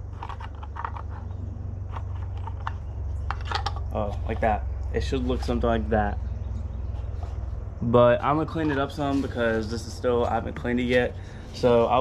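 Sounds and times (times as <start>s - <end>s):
steady low hum: 0.0s - 12.0s
plastic parts clicking and tapping: 0.1s - 4.6s.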